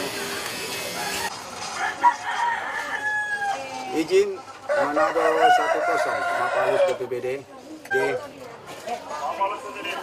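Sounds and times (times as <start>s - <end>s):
rooster crowing: 0.9s - 3.9s, 4.7s - 7.0s
chickens calling: 0.9s - 7.2s.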